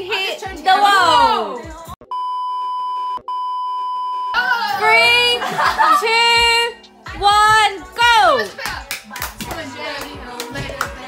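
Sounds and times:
electronic test tone beeps: 2.0s - 4.4s.

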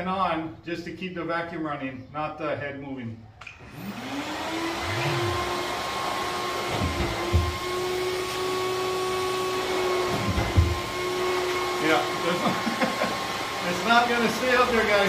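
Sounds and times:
sander motor spinning: 3.5s - 15.0s
dust extractor running: 3.6s - 15.0s.

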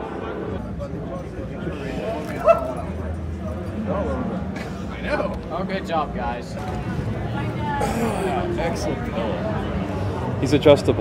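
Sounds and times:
background talk: 0.0s - 11.0s.

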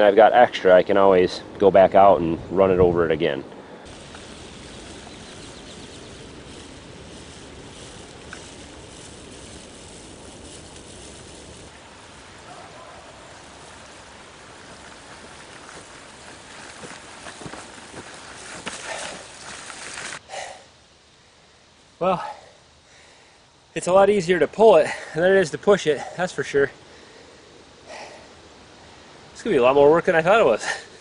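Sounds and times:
outdoor background noise: 0.0s - 31.0s.

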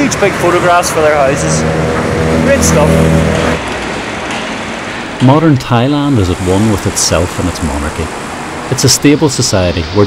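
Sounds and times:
motor rickshaw engine droning: 0.0s - 5.1s
city traffic noise: 0.0s - 10.0s.

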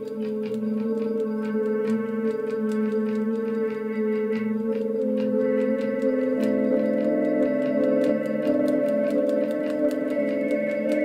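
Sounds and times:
light ticking: 0.0s - 11.0s.

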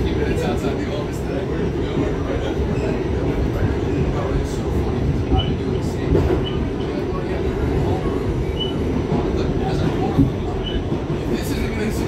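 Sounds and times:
subway car rumbling at speed: 0.0s - 12.0s.

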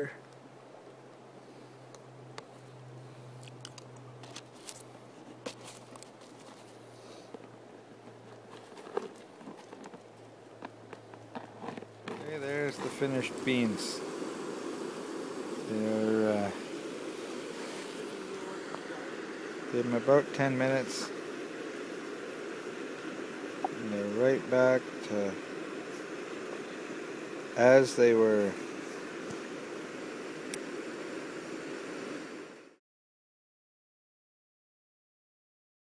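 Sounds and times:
steady background noise: 0.0s - 32.8s
aluminium foil crinkling: 3.5s - 6.8s, 8.2s - 12.3s.

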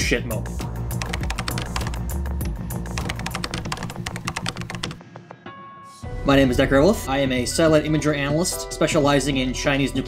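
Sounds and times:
computer keyboard typing clicks: 1.0s - 2.1s, 3.0s - 5.0s.

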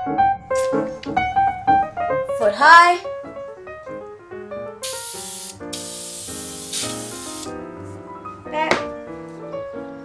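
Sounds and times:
aerosol can spraying: 4.8s - 7.6s.

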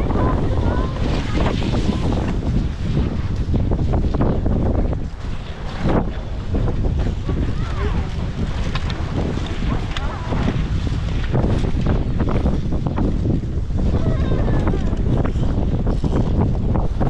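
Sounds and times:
skis scraping on snow: 0.0s - 17.0s
wind buffeting microphone: 0.0s - 17.0s.

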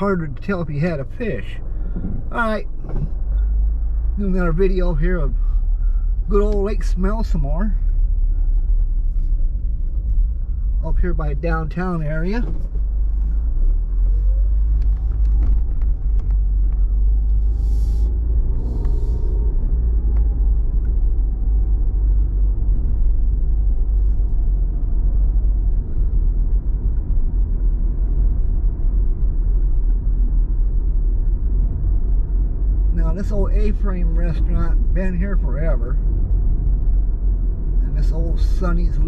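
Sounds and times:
engine and tyre rumble: 0.0s - 39.0s.

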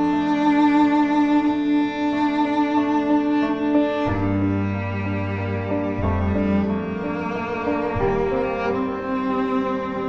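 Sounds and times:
cello long mournful note: 0.0s - 10.0s
low bowed strings: 0.0s - 10.0s.

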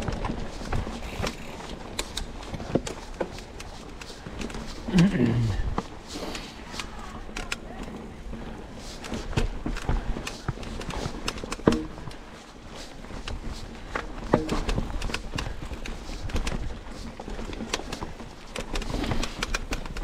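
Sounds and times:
mountain bike clattering over rocks: 0.0s - 20.0s.

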